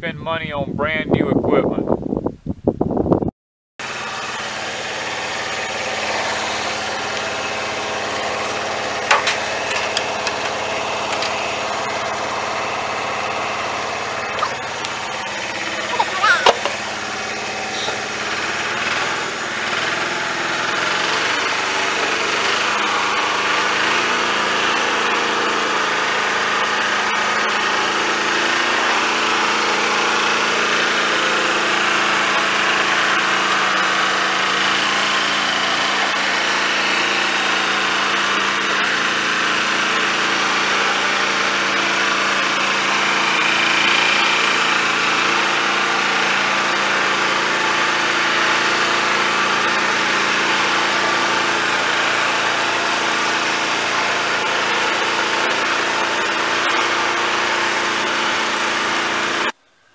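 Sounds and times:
tractor engine running: 3.8 - 59.6.

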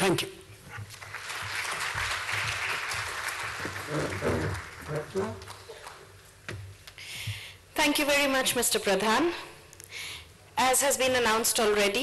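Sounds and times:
audience applauding: 0.9 - 6.3.

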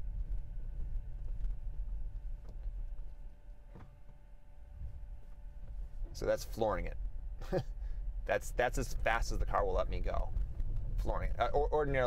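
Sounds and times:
faint steady whine: 0.0 - 12.0.

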